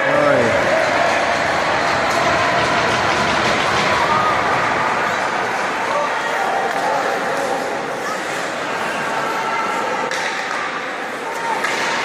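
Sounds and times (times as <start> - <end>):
hockey play noise: 0.0 - 12.0
indistinct crowd voices: 0.0 - 12.0.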